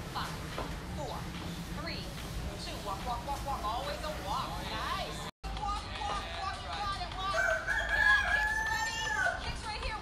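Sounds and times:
rooster crowing: 7.3s - 9.5s.

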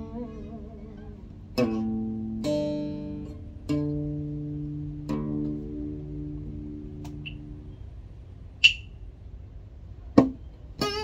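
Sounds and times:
acoustic guitar notes: 0.0s - 9.3s, 10.1s - 11.0s
sharp click with high ring: 8.6s - 8.9s.

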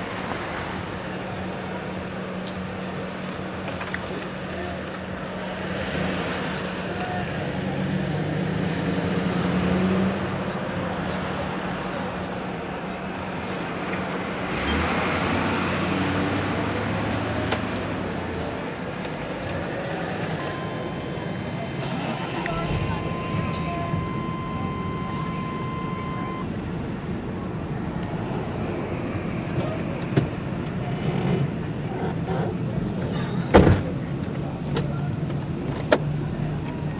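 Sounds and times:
car engine and road noise: 0.0s - 36.9s
street traffic: 0.0s - 36.9s.

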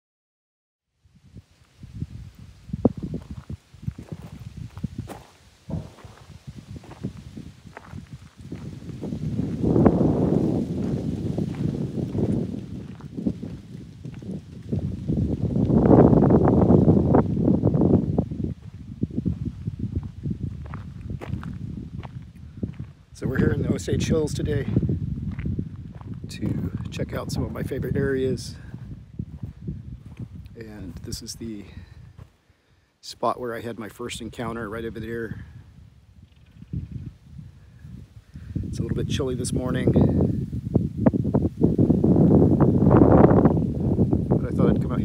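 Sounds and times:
low rumble on microphone: 1.0s - 32.3s, 34.4s - 45.0s
footsteps on gravel: 2.9s - 15.8s, 18.6s - 23.8s, 24.6s - 31.1s.

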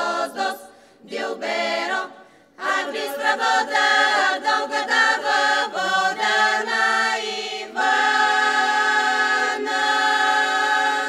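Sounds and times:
women's choir singing a cappella: 0.0s - 11.0s.

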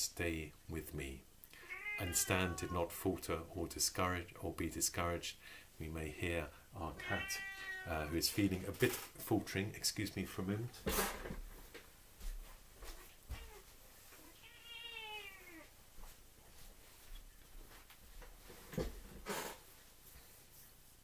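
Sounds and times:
cat meowing: 1.6s - 2.9s, 7.0s - 8.1s, 13.3s - 15.7s
knocks and rustles of movement: 8.2s - 9.4s, 10.7s - 14.4s, 15.6s - 21.0s.

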